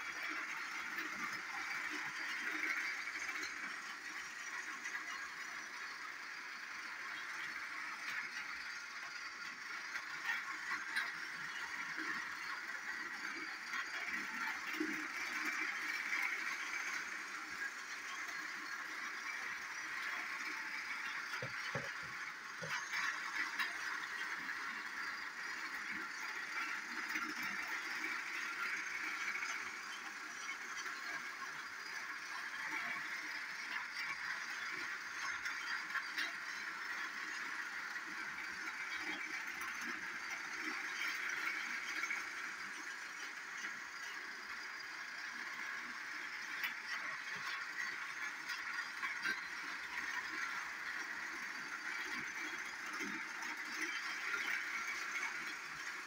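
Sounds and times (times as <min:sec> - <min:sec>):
toy train motor whirring: 0:00.0 - 0:56.0
wheels clicking on plastic track: 0:00.0 - 0:56.0.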